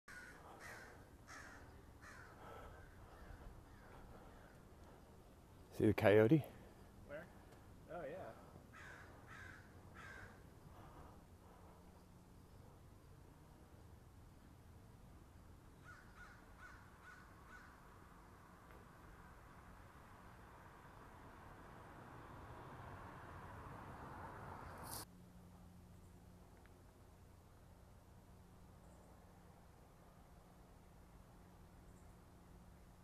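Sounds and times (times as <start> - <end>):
faint bird calls: 0.1 - 5.6, 8.2 - 12.8, 15.8 - 17.8.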